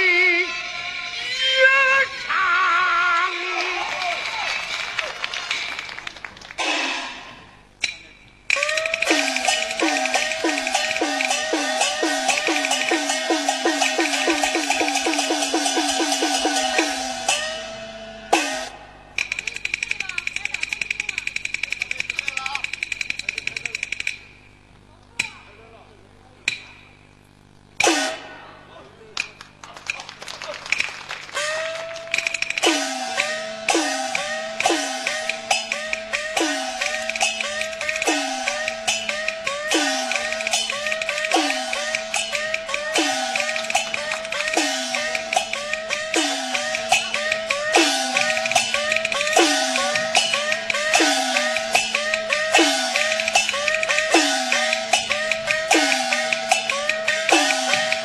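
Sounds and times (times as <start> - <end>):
opera gongs and cymbals: 6.6 - 24.5, 27.8 - 28.8, 31.3 - 58.0.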